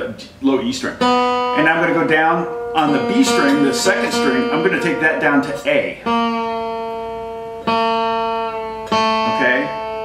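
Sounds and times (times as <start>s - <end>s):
acoustic guitar string plucked: 1.0s - 10.0s.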